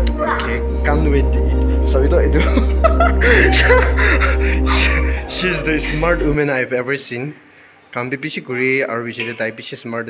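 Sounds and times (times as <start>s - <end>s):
background music: 0.0s - 6.7s
people laughing: 2.3s - 6.4s.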